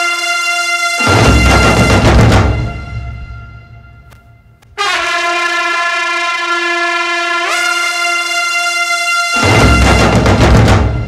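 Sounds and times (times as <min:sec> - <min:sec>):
sustained horn-like chord: 0:00.0 - 0:10.3
music: 0:00.0 - 0:11.0.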